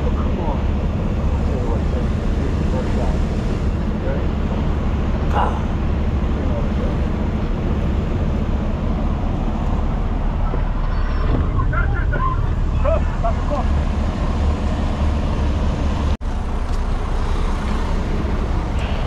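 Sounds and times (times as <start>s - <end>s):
truck engine drone in cab: 0.0s - 19.0s.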